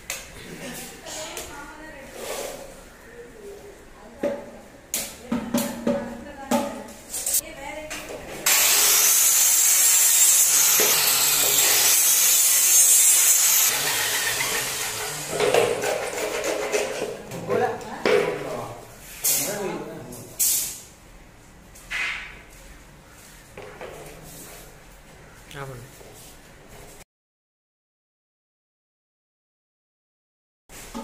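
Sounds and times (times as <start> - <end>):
circular saw cutting plastic: 8.4 - 17.0.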